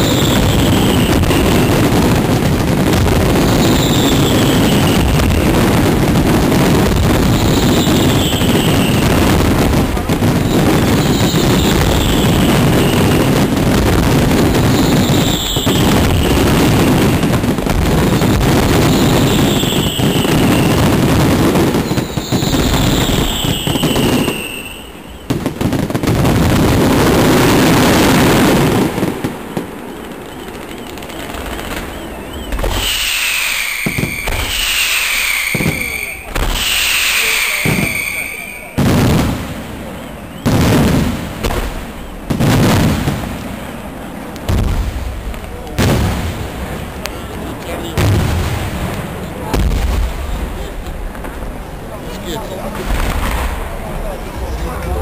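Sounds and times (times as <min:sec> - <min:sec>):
falling firework whistles: 0:00.0 - 0:43.5
fireworks bangs and crackling: 0:00.0 - 0:55.0.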